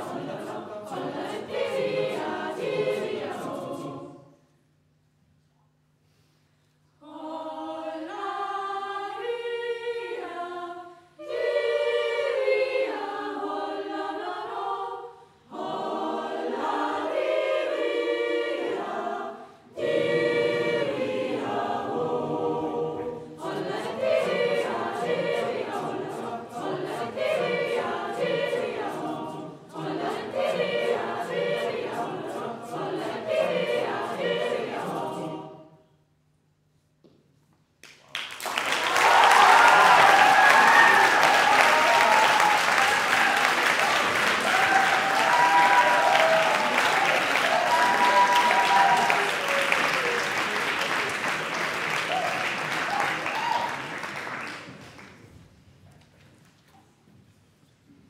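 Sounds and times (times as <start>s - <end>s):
choir singing unaccompanied: 0.0s - 4.4s, 7.0s - 35.9s, 38.9s - 52.8s.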